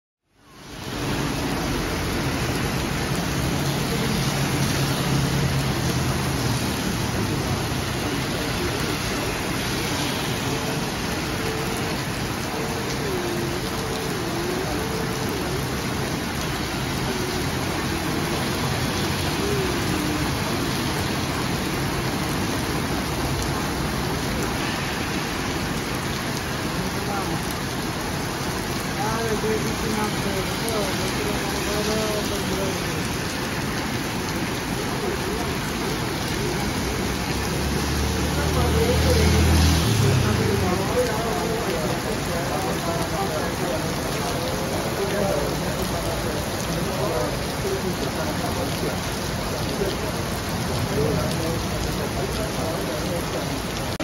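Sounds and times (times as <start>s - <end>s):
heavy rain on road: 0.3s - 54.0s.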